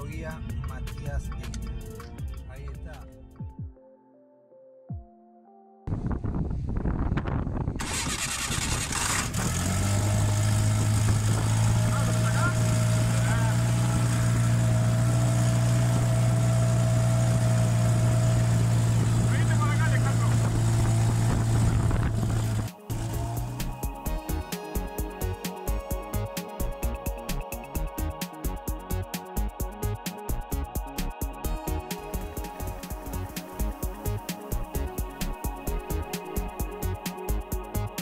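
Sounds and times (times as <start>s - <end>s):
airboat engine and propeller: 7.8s - 27.6s, 31.5s - 35.9s.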